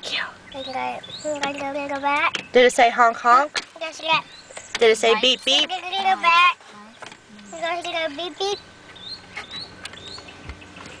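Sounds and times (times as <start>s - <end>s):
small bird chirping: 0.0s - 11.0s.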